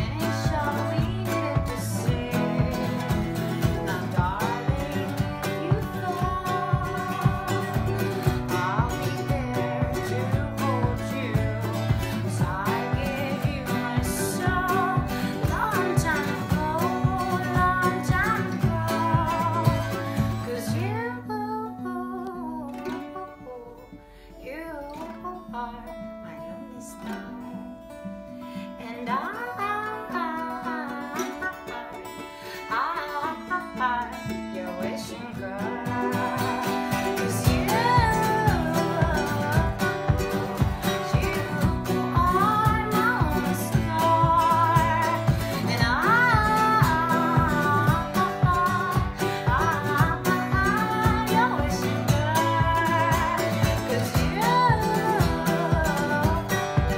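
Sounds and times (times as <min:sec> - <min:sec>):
acoustic guitar strumming: 0:00.0 - 0:56.9
ukulele playing: 0:00.0 - 0:56.9
woman singing: 0:00.0 - 0:56.9.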